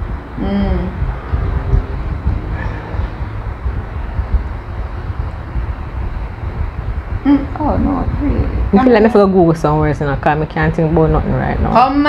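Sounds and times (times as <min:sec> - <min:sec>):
low rumbling: 0:00.0 - 0:12.0.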